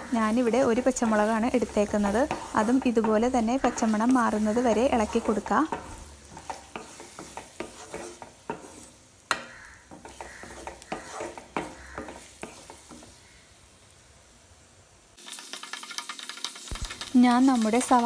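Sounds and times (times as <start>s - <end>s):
spatula scraping a pan: 0.0s - 13.4s, 15.2s - 18.0s
onions sizzling in oil: 0.0s - 18.0s.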